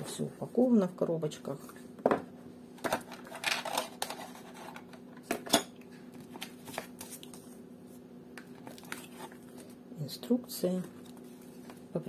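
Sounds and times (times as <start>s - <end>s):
faint steady hum: 0.0s - 12.0s
cardboard and paper rustling: 2.8s - 4.9s, 6.2s - 7.6s, 8.5s - 9.8s.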